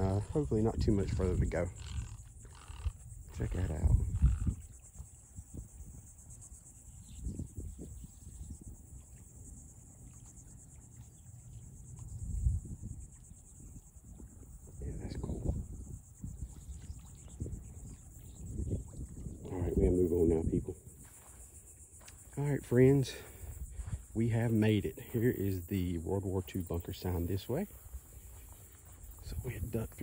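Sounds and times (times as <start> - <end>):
insects buzzing: 0.0 - 30.0.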